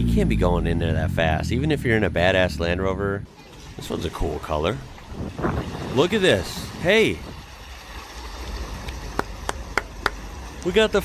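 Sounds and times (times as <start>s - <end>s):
flood water rushing and splashing: 3.3s - 11.0s.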